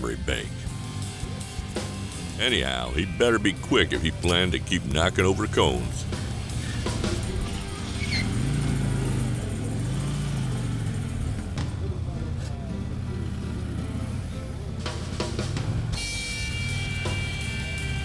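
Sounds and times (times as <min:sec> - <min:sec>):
background music: 0:00.0 - 0:18.0
motorcycle engine revving: 0:05.4 - 0:18.0.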